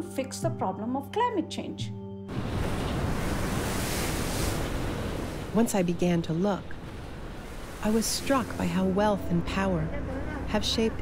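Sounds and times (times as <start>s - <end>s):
floodwater rushing: 2.3s - 11.0s.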